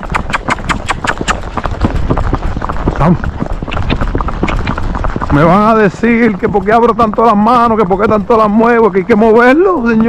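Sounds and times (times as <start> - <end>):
horse hooves on asphalt: 0.0 - 10.0.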